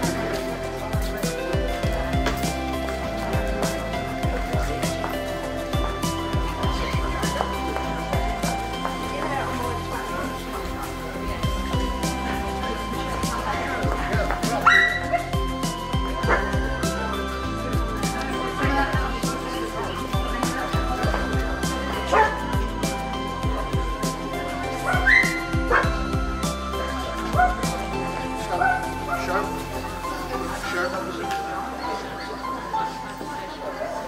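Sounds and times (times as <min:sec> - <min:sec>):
music with steady beat: 0:00.0 - 0:33.4
dog barking or yipping: 0:14.7 - 0:15.2, 0:24.9 - 0:25.8.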